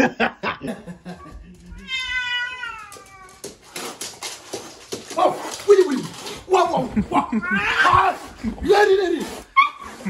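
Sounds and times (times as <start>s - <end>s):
cat meowing: 1.7s - 3.5s.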